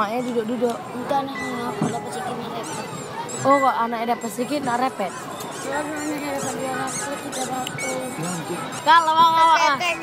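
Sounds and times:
crowd chatter: 0.0 - 10.0
high squeaky chirps: 1.2 - 10.0.

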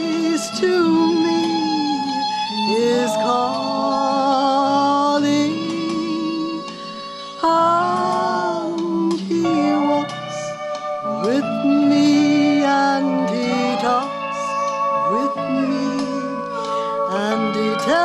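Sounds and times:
woman singing a hymn: 0.0 - 6.8, 7.4 - 10.5, 11.1 - 18.0
instrumental accompaniment: 0.0 - 18.0.

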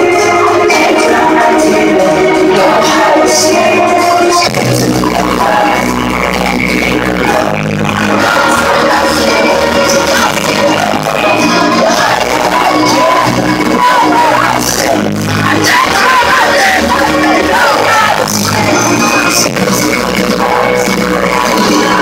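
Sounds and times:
rock band playing live: 0.0 - 22.0.

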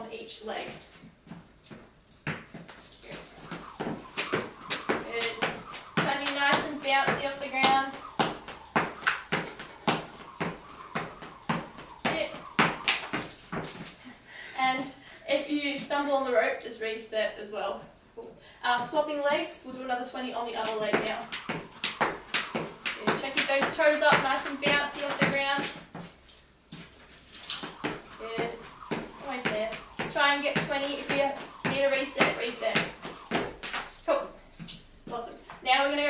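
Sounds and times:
jump rope slapping mat: 0.7 - 14.0, 20.4 - 26.2, 26.8 - 35.2.

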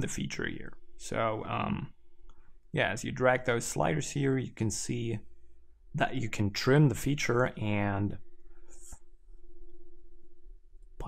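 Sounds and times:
faint constant tone: 0.0 - 11.0
low electrical hum: 0.0 - 11.0.

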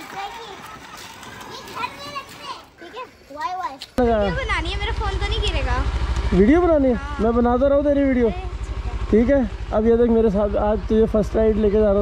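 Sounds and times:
children chattering and calling: 0.0 - 7.4, 8.0 - 9.1.

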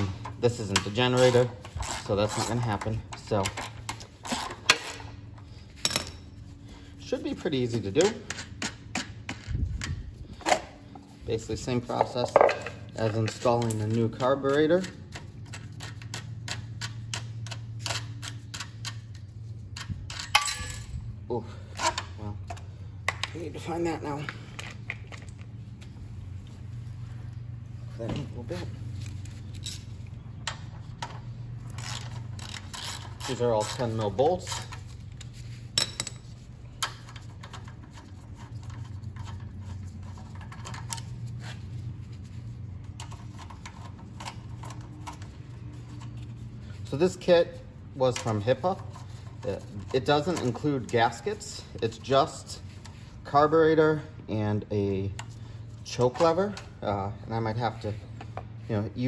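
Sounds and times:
low background hum: 0.0 - 59.0
ratchet wrench clicking: 31.7 - 34.8.

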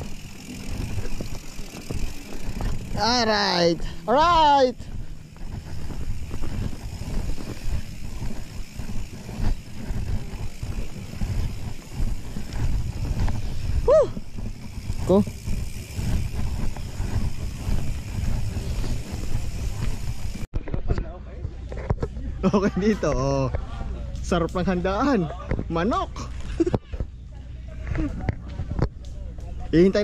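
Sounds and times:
tyres and frame rattling: 0.0 - 20.5
mountain bike rolling over dirt: 0.0 - 20.9.

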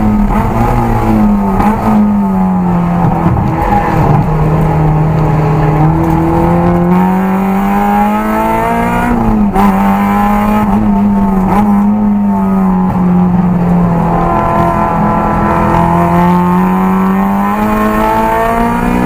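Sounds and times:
car engine pulling under load: 0.0 - 19.0.

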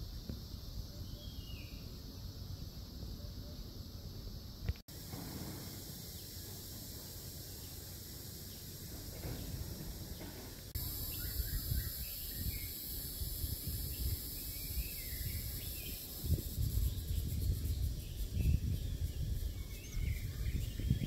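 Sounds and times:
high insect drone: 0.0 - 21.0
faint bird chirps: 0.9 - 3.8, 7.5 - 21.0
wind rumbling on microphone: 8.8 - 21.0.

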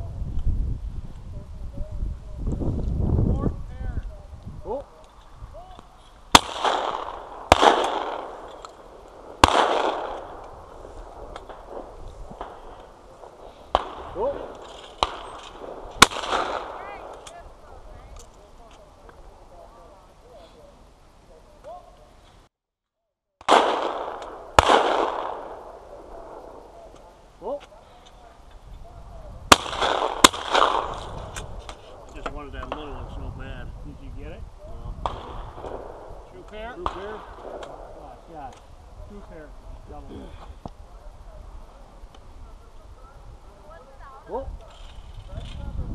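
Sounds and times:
shotgun shots with echo: 6.3 - 17.3, 23.4 - 27.1, 29.5 - 33.0, 35.0 - 38.4.

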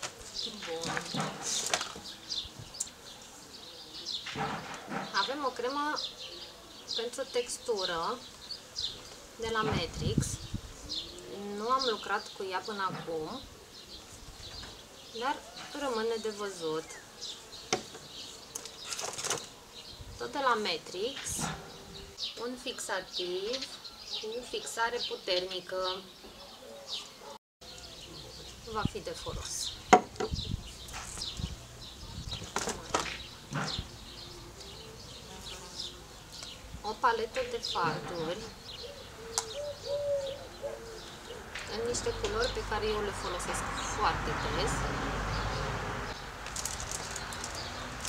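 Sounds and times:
small birds chirping: 0.0 - 48.0
woman speaking: 0.5 - 1.7, 9.4 - 10.4, 11.3 - 13.4, 15.2 - 17.0, 20.2 - 21.4, 22.4 - 26.1, 28.7 - 29.8, 36.8 - 38.6, 41.7 - 45.1
dove cooing: 38.2 - 41.6
packaging crinkling: 46.4 - 48.0.

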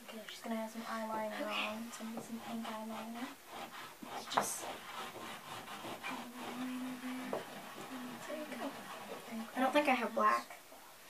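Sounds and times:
chalk scratching on chalkboard: 1.0 - 10.2.

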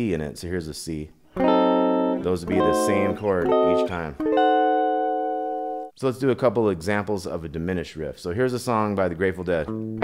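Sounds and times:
electric guitar chord ringing: 1.4 - 5.9.

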